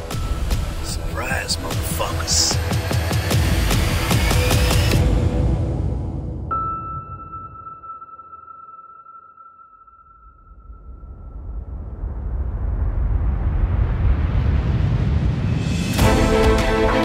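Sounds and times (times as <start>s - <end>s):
high ringing tone: 6.7s - 11.4s.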